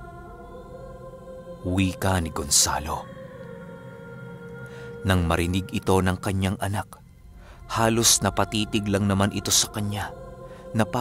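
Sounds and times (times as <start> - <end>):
droning synth pad: 0.0 - 11.0.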